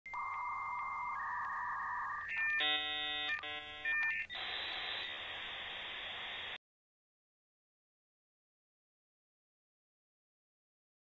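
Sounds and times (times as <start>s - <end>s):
steady high synth tone: 0.1s - 5.2s.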